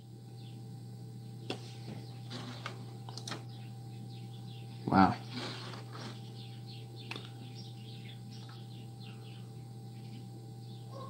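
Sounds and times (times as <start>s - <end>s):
low equipment hum: 0.0s - 11.0s.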